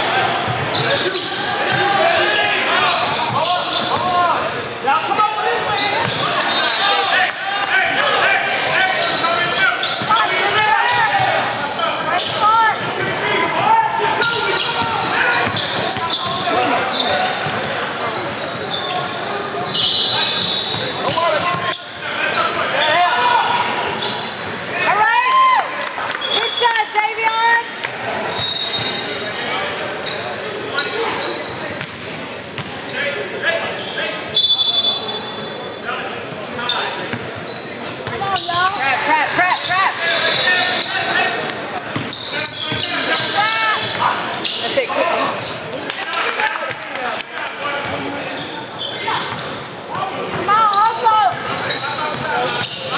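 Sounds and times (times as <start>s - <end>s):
echoing shouts: 0.0s - 17.4s, 18.9s - 27.8s
sneakers squeaking on hardwood: 0.5s - 4.1s, 5.5s - 6.9s, 8.5s - 11.4s, 12.0s - 23.0s, 28.3s - 33.2s, 36.6s - 38.8s, 39.4s - 44.8s, 47.8s - 52.9s
basketball bouncing: 14.8s - 16.4s.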